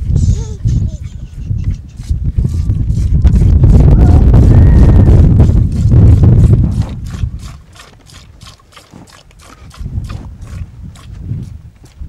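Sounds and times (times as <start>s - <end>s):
low rumbling: 0.0s - 8.5s.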